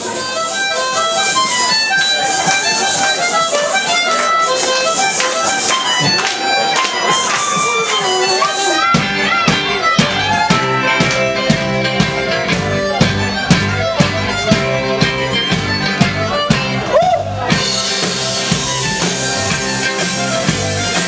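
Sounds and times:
amplified blues harmonica: 0.0s - 21.0s
band playing steady rhythm: 0.0s - 21.0s.

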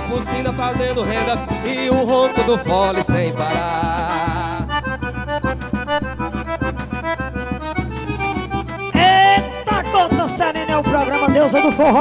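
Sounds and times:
accordion fast melody: 0.0s - 12.0s.

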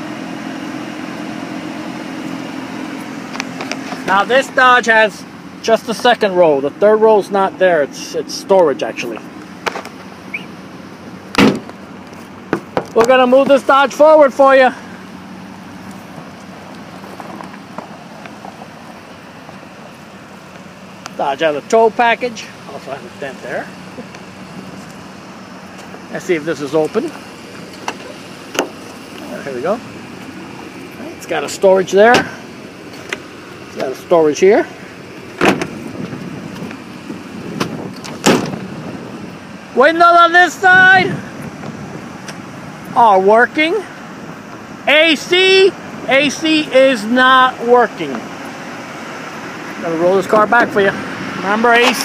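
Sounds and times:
car door shutting: 11.3s - 13.6s, 27.6s - 29.0s, 32.0s - 33.2s, 35.3s - 36.8s, 37.4s - 38.7s.

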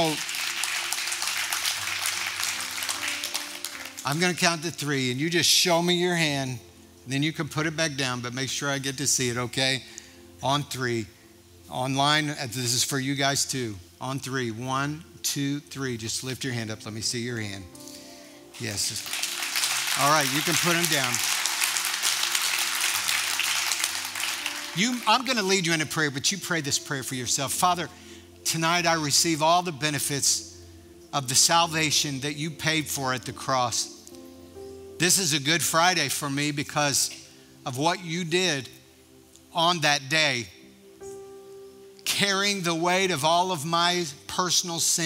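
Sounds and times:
congregation applauding: 0.0s - 4.8s, 18.5s - 25.9s.

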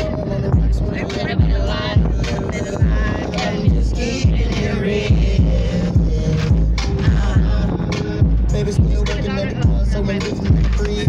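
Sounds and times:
deep bass kicks: 0.0s - 11.0s
person singing: 0.0s - 11.0s.

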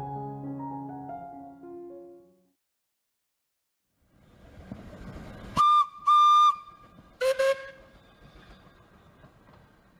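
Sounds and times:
steam locomotive whistle toots: 5.6s - 8.0s.

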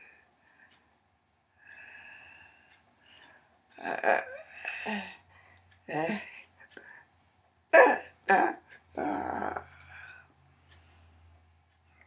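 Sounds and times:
woman's wordless vocal outbursts: 5.9s - 6.4s, 7.7s - 10.2s.

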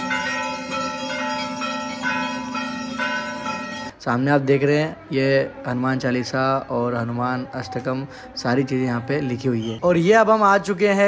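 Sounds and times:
brass bells rung by hand: 0.0s - 4.0s.

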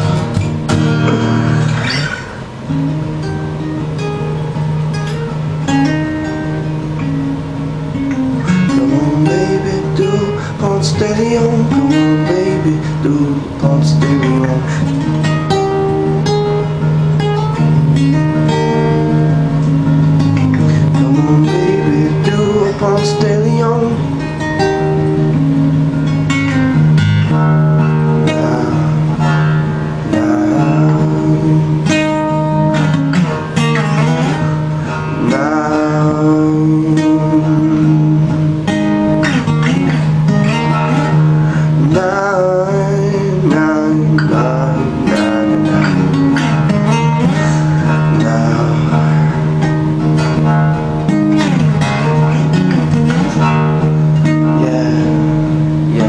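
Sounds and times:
acoustic guitar strummed and picked: 0.0s - 56.0s.

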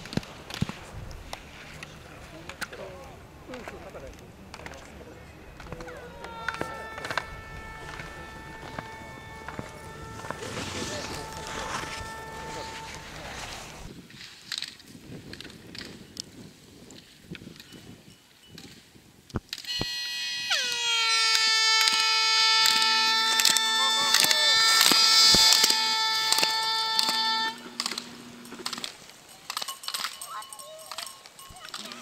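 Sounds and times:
slalom poles clacking: 0.0s - 16.1s, 20.6s - 32.0s
loud steady horn note: 5.5s - 13.9s, 19.7s - 28.9s
lower horn note: 5.5s - 13.9s, 19.7s - 28.9s.

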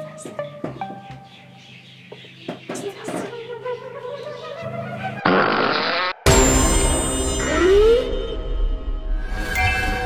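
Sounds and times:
harsh raspy noise: 5.0s - 6.3s
loud music stinger: 6.3s - 10.0s.

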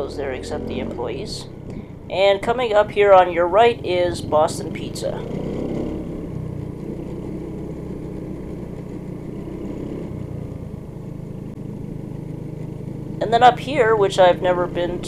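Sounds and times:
motor scooter engine humming: 0.0s - 15.0s.

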